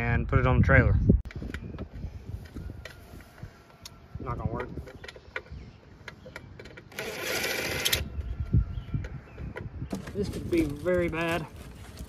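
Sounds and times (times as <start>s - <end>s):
cordless drill driving screw: 6.9s - 8.1s.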